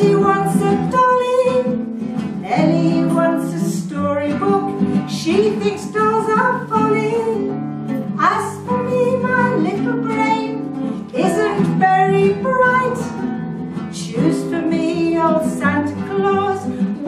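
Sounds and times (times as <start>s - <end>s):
acoustic guitar: 0.0s - 17.0s
woman singing a folk song: 0.0s - 17.0s.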